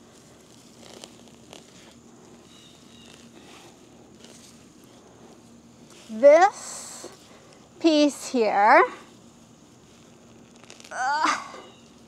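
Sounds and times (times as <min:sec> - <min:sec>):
soil and roots crackling: 0:00.0 - 0:08.7, 0:09.7 - 0:12.0.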